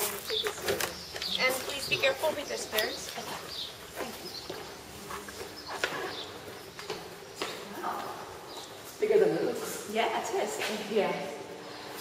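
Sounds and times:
faint voices murmuring: 0.0 - 8.6
footsteps going down stairs: 0.0 - 9.0.

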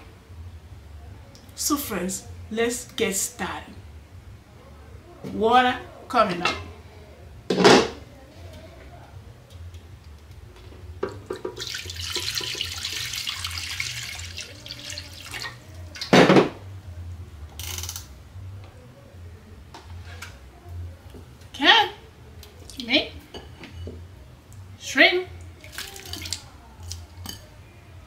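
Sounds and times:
water pouring into a pot: 11.5 - 16.1, 25.6 - 26.4.

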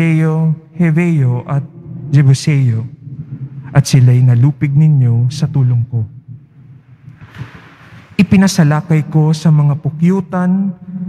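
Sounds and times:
low room hum: 0.0 - 11.0
soft breathy noise: 6.6 - 8.2.

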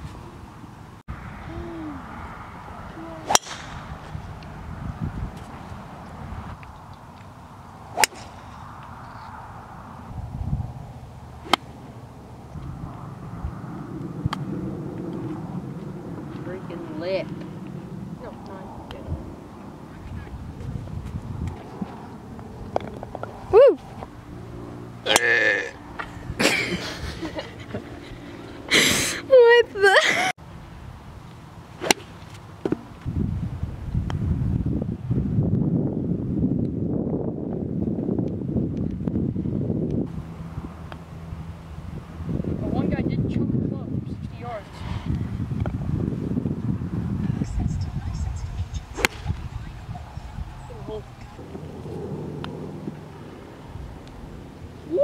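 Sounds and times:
low outdoor rumble: 0.0 - 35.1, 47.0 - 55.0
wind buffeting microphone: 1.1 - 24.1, 32.8 - 55.0
golf club striking ball: 3.3 - 3.9, 8.0 - 8.4, 11.4 - 11.7, 31.8 - 32.8, 49.0 - 49.4.

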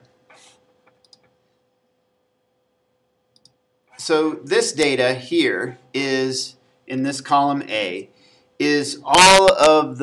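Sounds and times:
faint steady hum: 0.0 - 10.0
computer mouse clicks: 0.3 - 1.4, 3.3 - 3.6.

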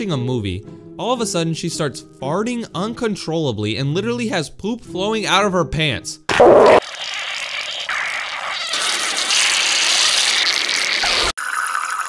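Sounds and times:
cartoon wet hiss: 6.4 - 11.3.

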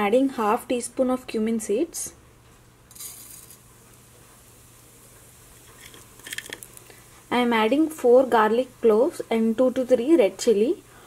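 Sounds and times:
seeds crackling while frying: 2.9 - 11.0
seeds sizzling in hot oil: 2.9 - 11.0.

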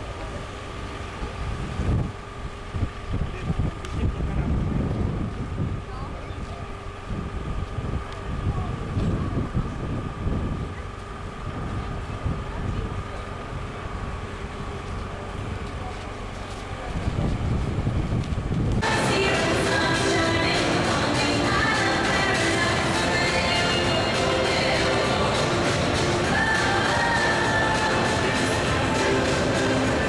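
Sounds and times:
wind buffeting microphone: 1.0 - 18.8.

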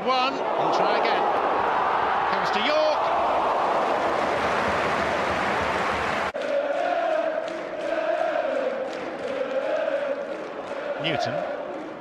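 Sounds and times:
stadium crowd roaring: 0.0 - 12.0
crowd chanting: 0.4 - 12.0.

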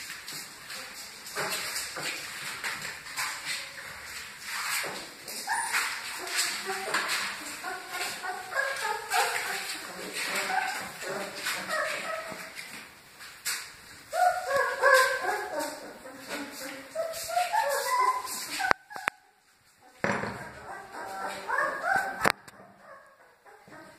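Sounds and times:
puppies whimpering and yipping: 5.3 - 12.6, 14.1 - 19.3, 20.4 - 23.9.

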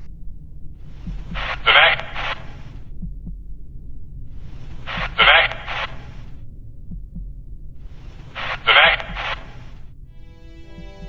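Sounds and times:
low steady rumble: 0.0 - 11.0
radio static burst: 1.3 - 2.7, 4.8 - 6.2, 8.3 - 9.8.

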